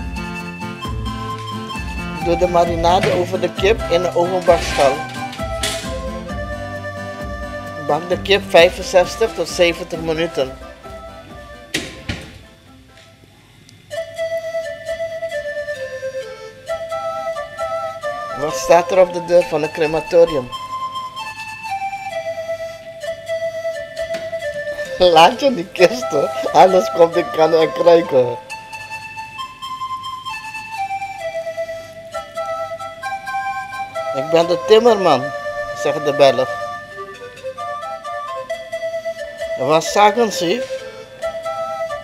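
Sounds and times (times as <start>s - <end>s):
steady low beat: 0.0s - 12.6s
held melody notes: 0.0s - 42.0s.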